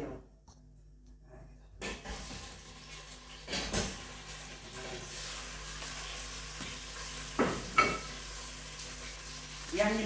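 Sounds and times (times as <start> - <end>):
meat sizzling in hot oil: 2.0 - 10.0.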